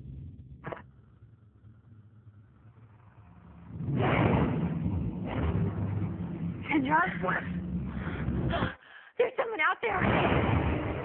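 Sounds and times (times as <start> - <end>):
loud rushing rumble: 1.2 - 8.8.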